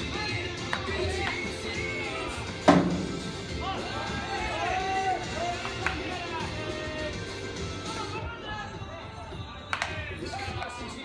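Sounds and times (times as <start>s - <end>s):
baseball players shouting: 3.2s - 11.0s.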